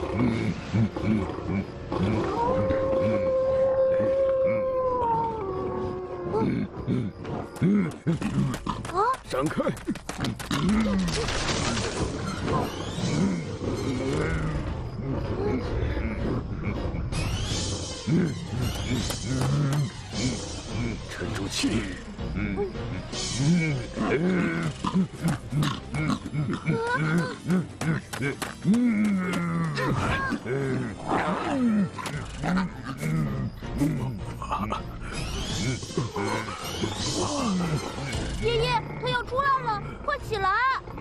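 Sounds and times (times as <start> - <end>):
monster growling and roaring: 28.6 - 34.2.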